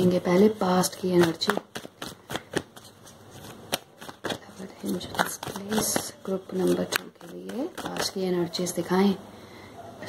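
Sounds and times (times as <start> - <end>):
cards being shuffled: 0.0 - 8.4.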